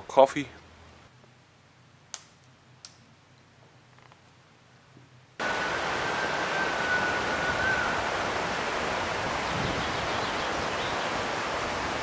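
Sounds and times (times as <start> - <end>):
river rushing over rapids: 5.4 - 12.0.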